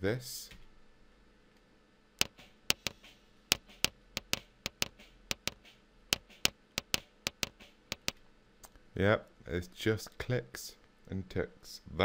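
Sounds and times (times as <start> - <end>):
sharp dry trigger clicks: 2.2 - 5.6, 6.2 - 8.2.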